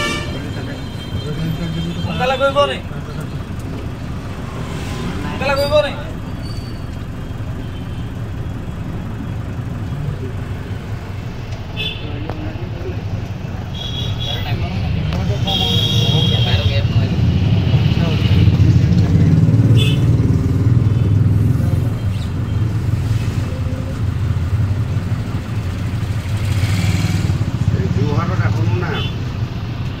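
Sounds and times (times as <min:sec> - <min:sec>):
vehicle engine and road rumble: 0:00.0 - 0:30.0.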